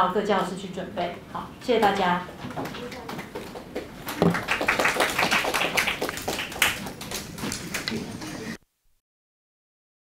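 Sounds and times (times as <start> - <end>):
audience applause: 3.2 - 8.6.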